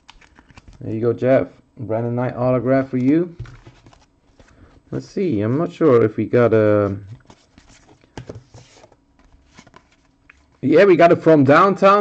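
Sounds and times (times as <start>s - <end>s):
trading cards rustling: 0.0s - 0.8s, 2.8s - 4.8s, 6.9s - 10.6s.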